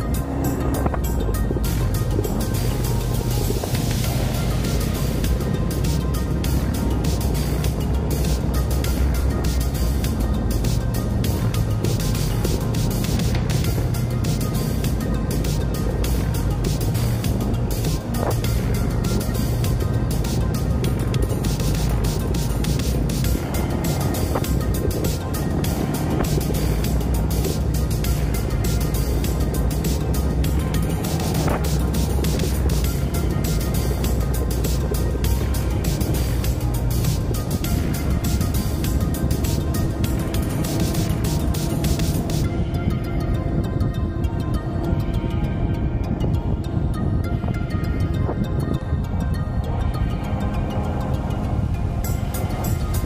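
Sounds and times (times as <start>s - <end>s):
motorcycle engine running: 0.0s - 42.8s
background music: 0.0s - 53.0s
road and wind noise: 0.0s - 53.0s.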